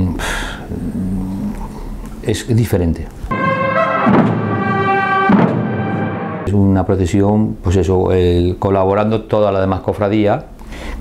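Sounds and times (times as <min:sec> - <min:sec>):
man breathing: 0:00.2 - 0:00.8, 0:10.6 - 0:11.0.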